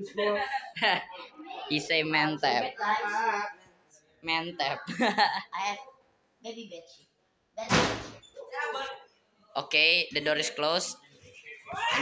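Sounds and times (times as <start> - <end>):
door slamming shut: 7.6 - 8.2.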